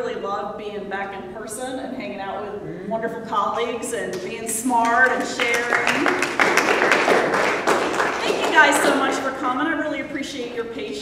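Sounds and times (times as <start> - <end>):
audience applauding: 4.8 - 9.1.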